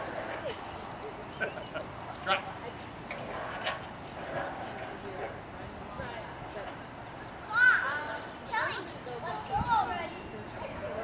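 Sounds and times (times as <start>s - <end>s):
faint indistinct voices: 2.1s - 11.0s.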